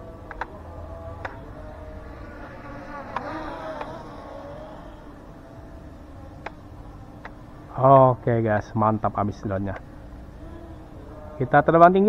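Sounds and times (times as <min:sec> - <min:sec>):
drone propellers buzzing: 0:00.0 - 0:07.8.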